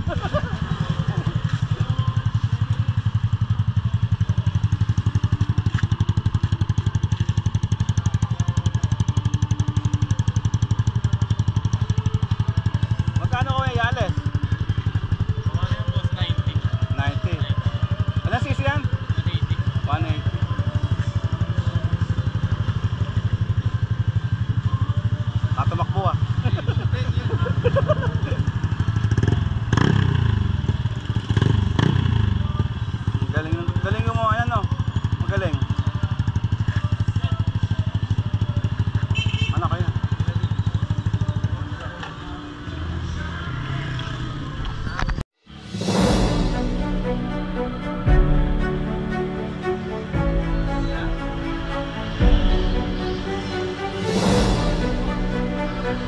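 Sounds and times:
scooter engine idling: 0:00.0 - 0:44.7.

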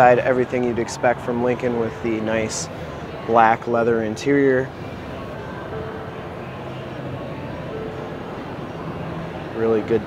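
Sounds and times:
exhibition hall hum: 0:00.0 - 0:10.0
faint distant music: 0:00.0 - 0:10.0
faint held notes: 0:00.0 - 0:10.0.

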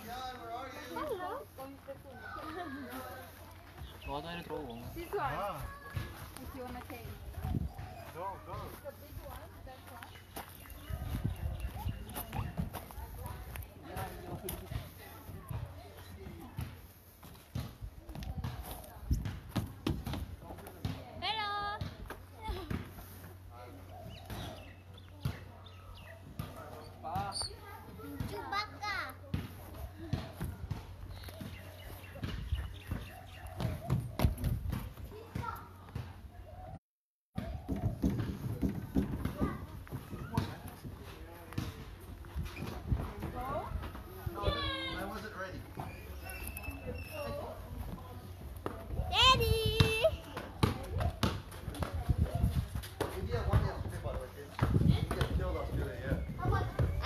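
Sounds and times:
children calling and squealing: 0:01.9 - 0:03.9, 0:05.1 - 0:06.5, 0:22.3 - 0:36.8, 0:43.8 - 0:52.8
scattered thuds and knocks: 0:37.4 - 0:40.6.

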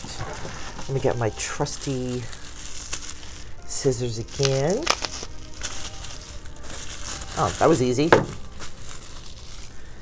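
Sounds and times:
bubble wrap crinkling: 0:00.0 - 0:10.0.

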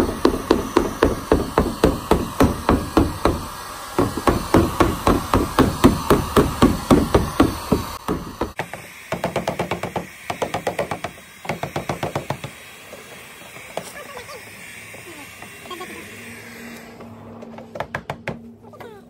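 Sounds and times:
hammer blows on plastic: 0:00.0 - 0:12.6
heat gun blowing: 0:00.0 - 0:17.7.

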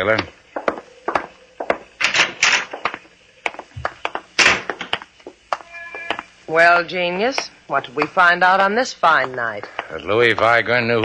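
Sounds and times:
footsteps: 0:00.0 - 0:06.4, 0:07.1 - 0:11.0.

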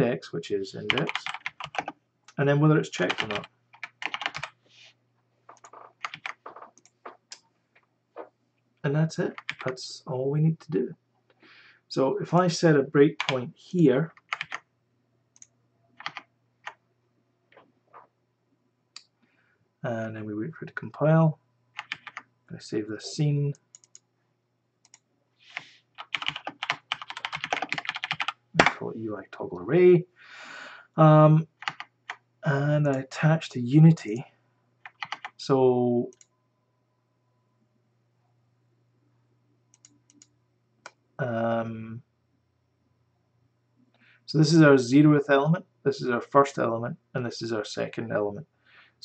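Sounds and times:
faint steady low hum: 0:00.0 - 0:49.0
keyboard and mouse clicks: 0:05.5 - 0:08.3, 0:23.7 - 0:24.0, 0:24.8 - 0:28.8, 0:34.9 - 0:35.4, 0:39.7 - 0:41.0.

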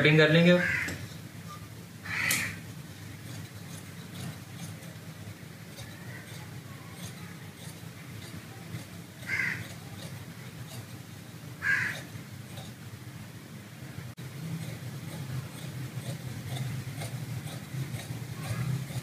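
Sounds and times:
crow cawing: 0:00.6 - 0:01.0, 0:02.0 - 0:02.6, 0:09.2 - 0:09.8, 0:11.6 - 0:12.1
shears snipping fabric: 0:02.2 - 0:12.8, 0:14.4 - 0:19.0.

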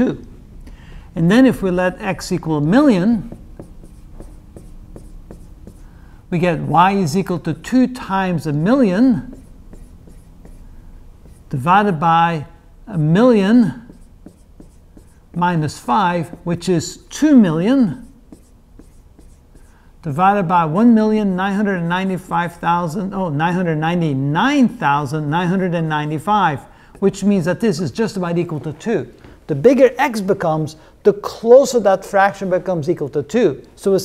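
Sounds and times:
marker writing on whiteboard: 0:02.8 - 0:06.0, 0:08.5 - 0:11.7, 0:13.0 - 0:16.7, 0:17.8 - 0:19.8, 0:26.9 - 0:27.5.

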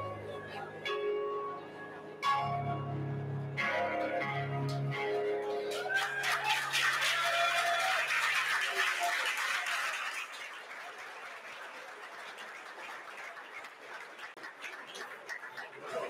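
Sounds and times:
audience applauding: 0:05.6 - 0:16.0.

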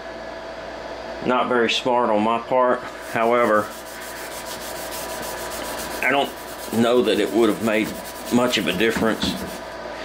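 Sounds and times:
pad scrubbing on steel: 0:03.0 - 0:09.7.

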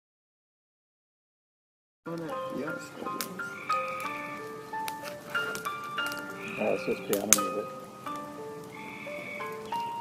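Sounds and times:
voices: 0:02.1 - 0:04.2, 0:05.4 - 0:07.8
overlapping held notes: 0:02.2 - 0:10.0
sharp cracks: 0:03.2 - 0:10.0.

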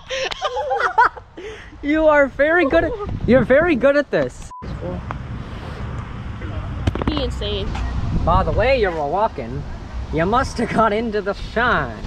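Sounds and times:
wind rumbling on microphone: 0:02.0 - 0:03.9, 0:04.6 - 0:10.6.

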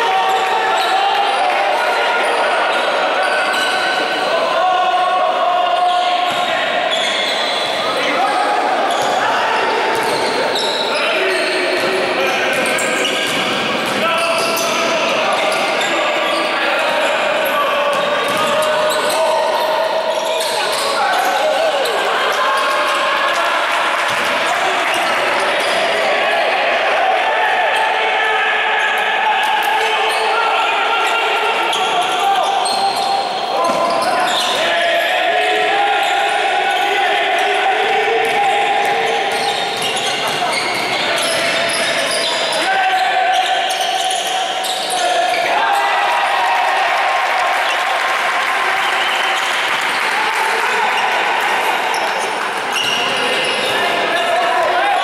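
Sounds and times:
players calling out: 0:00.0 - 0:55.0
basketball bouncing on court: 0:17.9 - 0:18.6.

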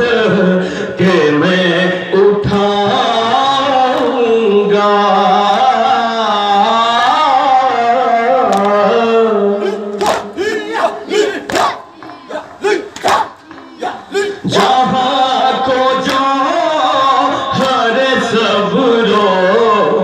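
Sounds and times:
man singing a lament: 0:00.0 - 0:20.0
group chanting: 0:01.0 - 0:20.0.

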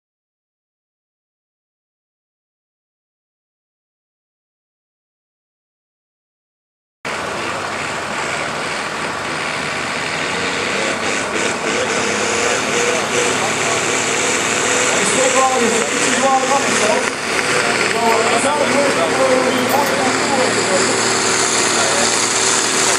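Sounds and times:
tractor diesel engine under load: 0:07.1 - 0:22.9
voices: 0:07.1 - 0:22.9.

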